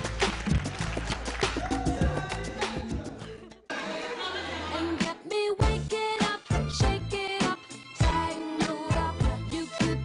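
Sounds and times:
dance music: 0:00.0 - 0:10.0
crowd chatting in a hall: 0:02.0 - 0:05.2.

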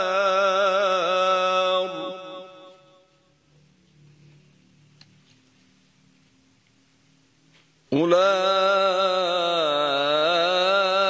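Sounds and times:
man reciting melodically: 0:00.0 - 0:03.2, 0:07.9 - 0:11.0.

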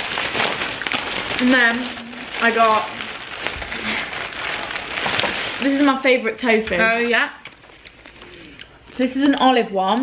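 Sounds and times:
plastic bag rustling: 0:00.0 - 0:09.9.

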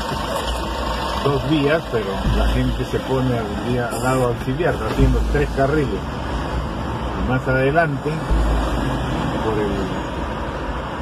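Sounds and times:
traffic noise from inside car: 0:00.0 - 0:11.0
low rumble: 0:02.1 - 0:07.3, 0:08.2 - 0:11.0.

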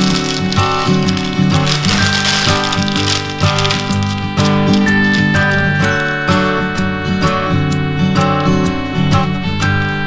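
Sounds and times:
baking paper crinkling: 0:00.0 - 0:06.6
acoustic guitar music: 0:00.0 - 0:10.0.

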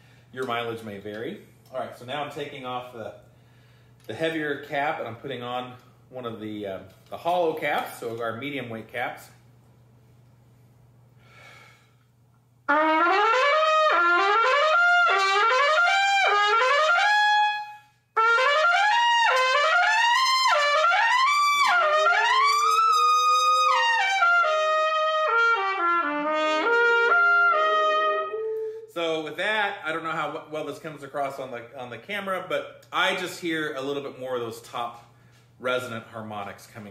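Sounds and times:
trumpet player breath: 0:03.3 - 0:04.0, 0:11.2 - 0:12.1, 0:28.5 - 0:28.9
solo trumpet scale runs: 0:12.7 - 0:29.0.

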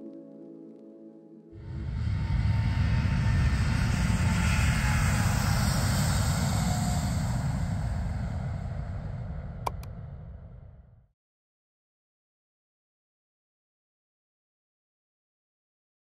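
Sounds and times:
jet engines roaring: 0:01.9 - 0:09.9.

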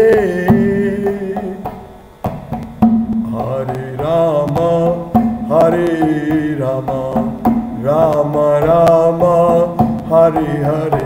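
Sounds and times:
man singing devotional song: 0:00.0 - 0:01.8, 0:03.2 - 0:11.0
percussion clicks: 0:00.0 - 0:11.0.

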